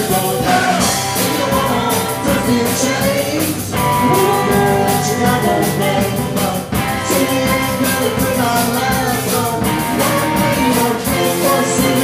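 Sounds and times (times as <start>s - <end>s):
drum kit: 0.0s - 12.0s
electric guitars: 0.0s - 12.0s
woman singing: 1.2s - 12.0s.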